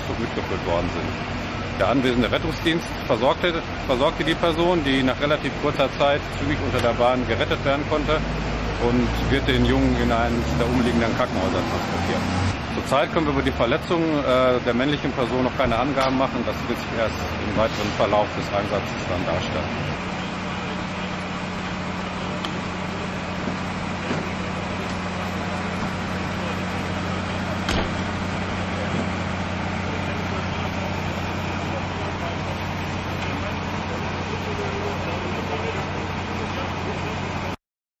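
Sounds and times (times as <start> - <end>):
idling vehicle engines: 0.0 - 37.6.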